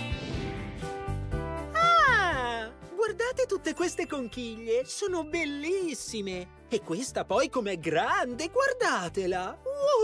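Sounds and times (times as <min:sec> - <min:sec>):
light background music: 0:00.0 - 0:10.0.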